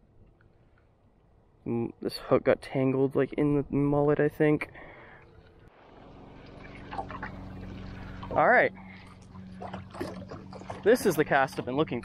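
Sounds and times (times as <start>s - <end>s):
small water splashes: 5.4s - 12.0s
water trickling: 5.4s - 12.0s.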